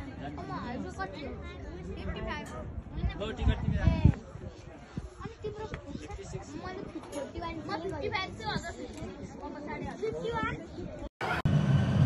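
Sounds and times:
people talking: 0.0 - 11.5.

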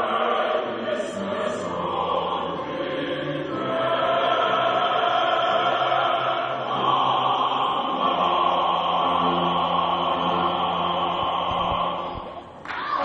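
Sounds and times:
choir singing chords: 0.0 - 12.6.

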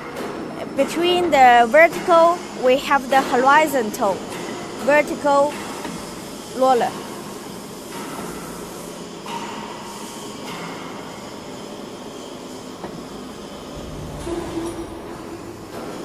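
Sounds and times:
machine running with faint whine: 12.2 - 16.0.

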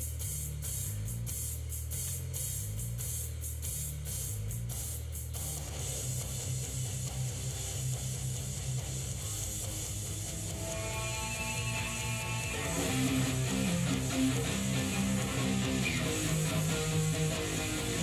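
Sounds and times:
drums and bass backing track: 0.0 - 18.0.

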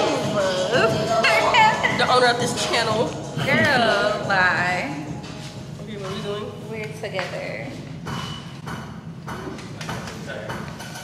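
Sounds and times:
indistinct voices talking: 0.0 - 5.2.

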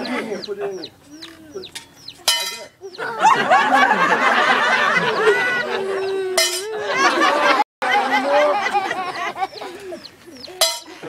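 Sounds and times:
children's voices: 0.0 - 3.4, 5.0 - 6.4
coin clinking in metal pail: 2.3 - 2.7, 6.4 - 6.7.

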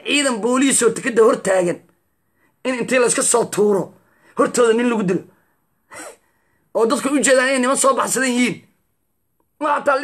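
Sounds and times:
man talking: 0.0 - 1.9, 2.6 - 5.4, 6.0 - 8.8, 9.6 - 10.0
brief breath: 5.4 - 6.7.

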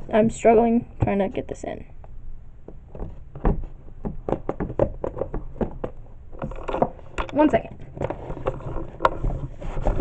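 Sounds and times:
handling noise on microphone: 2.7 - 10.0.

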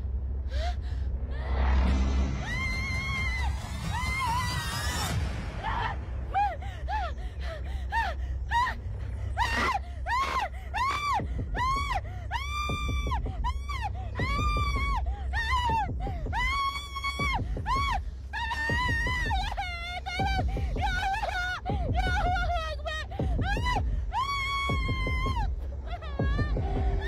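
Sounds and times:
low steady rumble: 0.0 - 27.0
woman screaming and wailing: 2.4 - 27.0.

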